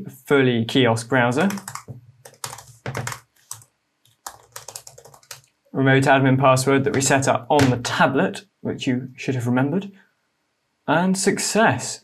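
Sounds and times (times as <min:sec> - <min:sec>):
computer keyboard typing: 0:01.4 - 0:05.5.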